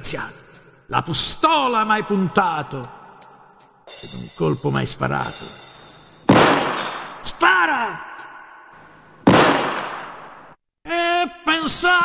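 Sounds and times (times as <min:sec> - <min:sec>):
gunshot with echo: 0:06.3 - 0:07.3, 0:09.3 - 0:10.6.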